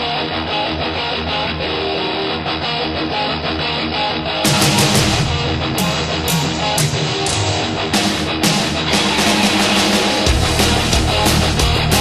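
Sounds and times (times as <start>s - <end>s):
hard rock music: 0.0s - 12.0s.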